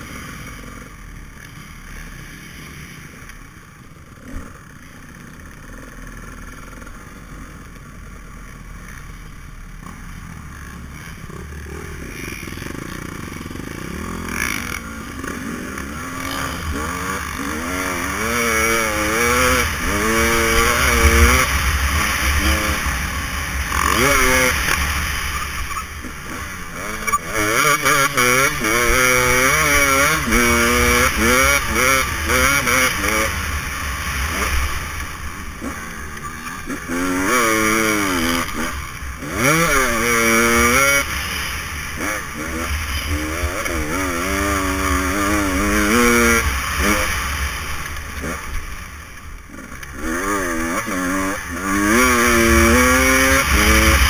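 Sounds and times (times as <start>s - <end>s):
dirt bike engine revving: 4.0s - 54.0s.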